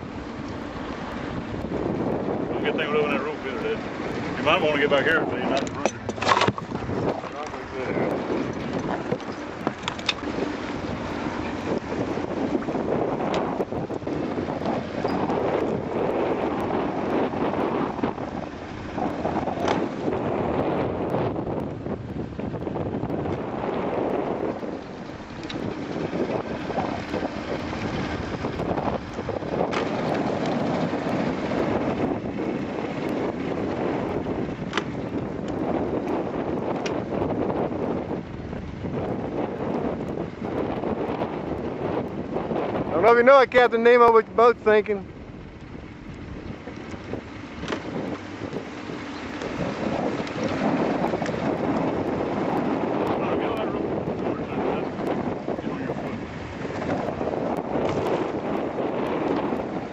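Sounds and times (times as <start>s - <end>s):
wind gusting on microphone: 0.0s - 59.9s.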